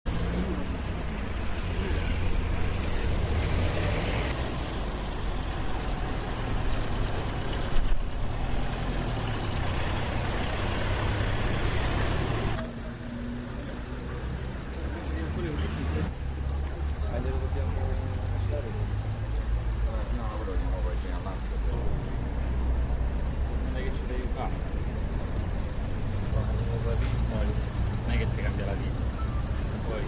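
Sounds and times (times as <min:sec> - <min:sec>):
heavy vehicle engine rumbling: 0:00.0 - 0:30.0
road noise: 0:00.0 - 0:30.0.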